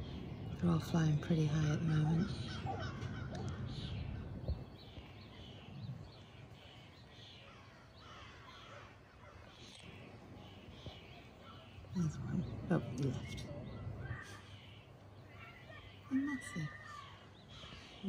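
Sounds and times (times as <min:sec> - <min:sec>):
bird calling: 0:00.0 - 0:18.0.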